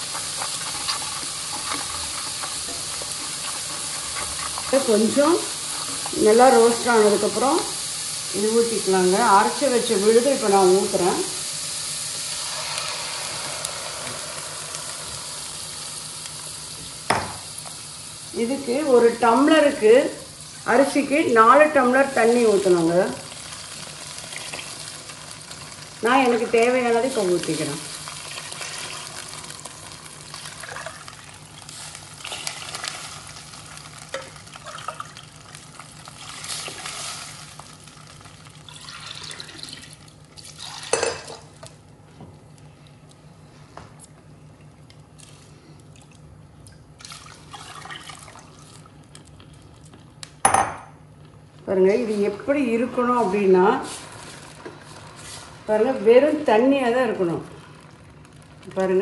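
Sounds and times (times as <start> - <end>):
hot oil sizzling in a pan: 0.0 - 41.6, 51.9 - 59.0
batter pouring: 27.9 - 41.5, 46.9 - 49.8.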